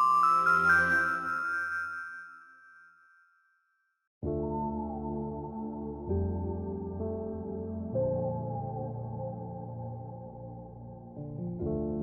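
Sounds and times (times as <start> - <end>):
chime-like logo jingle: 0.0 - 3.0.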